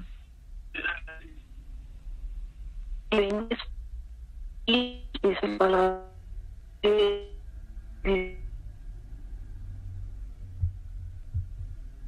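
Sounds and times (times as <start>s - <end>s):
steady low hum: 0.0s - 12.0s
soft low thumps: 10.4s - 12.0s.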